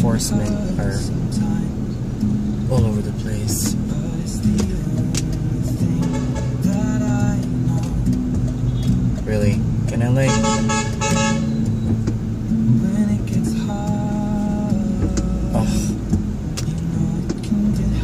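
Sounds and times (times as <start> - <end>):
car hum: 0.0 - 18.0
pop song on car stereo: 0.0 - 18.0.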